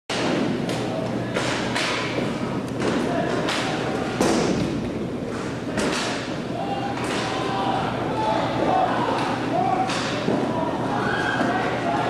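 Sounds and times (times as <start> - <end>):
steady low hum: 0.1 - 12.0
voices: 5.3 - 12.0.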